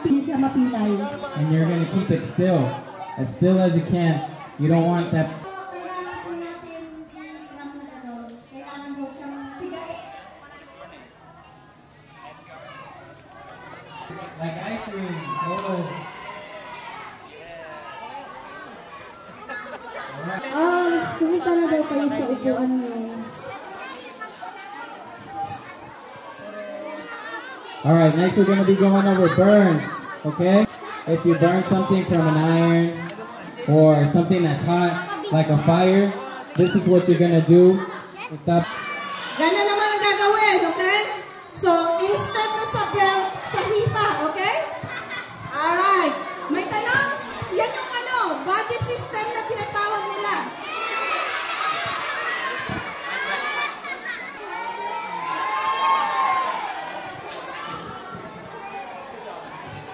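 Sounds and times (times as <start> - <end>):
children chattering: 0.0 - 59.9.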